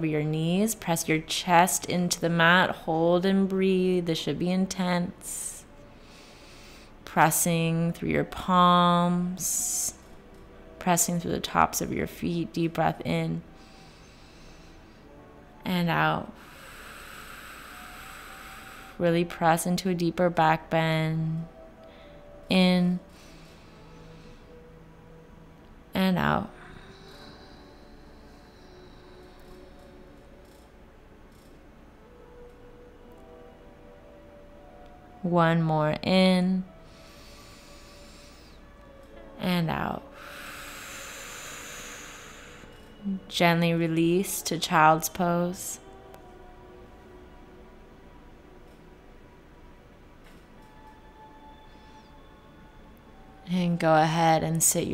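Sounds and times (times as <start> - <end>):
long breath exhale: 16.4 - 19.0, 40.2 - 42.9.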